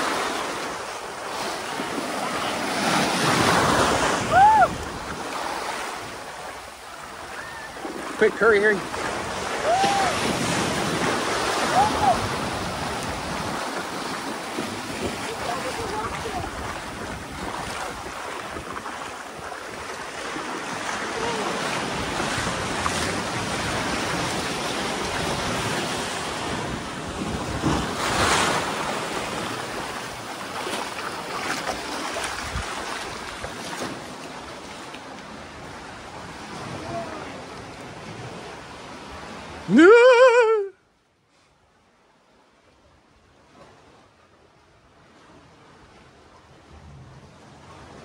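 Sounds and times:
surf washing on beach: 0:00.0 - 0:48.0
wind on microphone: 0:03.2 - 0:06.4, 0:09.0 - 0:30.3, 0:32.1 - 0:33.6
loud short cry: 0:04.3 - 0:04.8, 0:09.6 - 0:10.2, 0:39.7 - 0:40.8.

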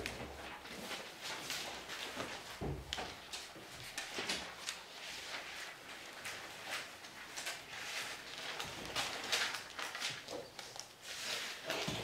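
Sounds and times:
paper pages rustling: 0:00.0 - 0:12.0.

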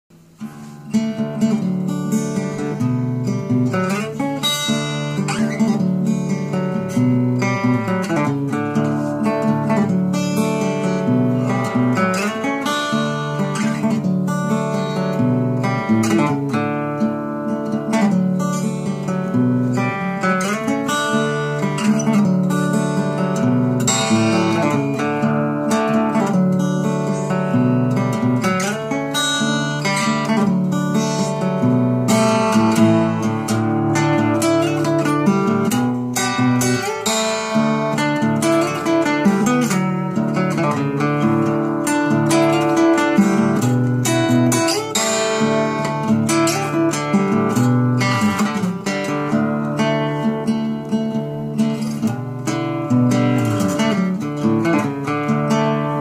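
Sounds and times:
acoustic guitar picking: 0:00.1 - 0:56.0.

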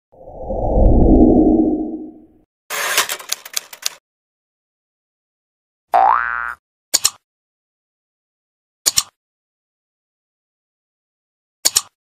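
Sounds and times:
whoosh: 0:00.2 - 0:02.2
typewriter key clicks: 0:03.0 - 0:04.0, 0:11.6 - 0:11.9.

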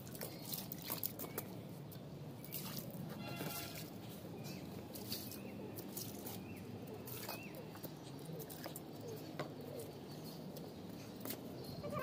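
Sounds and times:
faint bird cooing: 0:06.8 - 0:10.5, 0:11.7 - 0:12.0.

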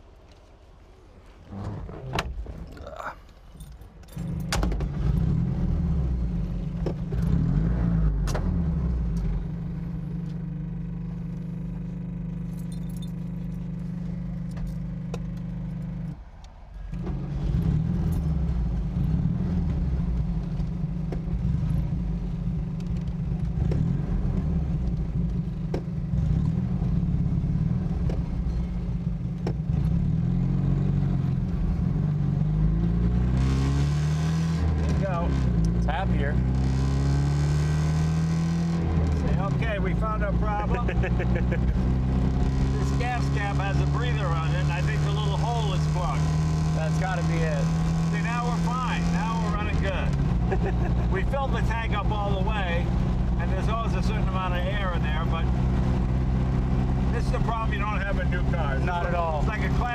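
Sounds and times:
small car engine running: 0:17.0 - 0:59.9.

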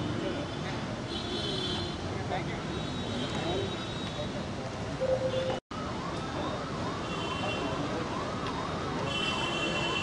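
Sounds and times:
faint high steady tone: 0:05.0 - 0:05.6.

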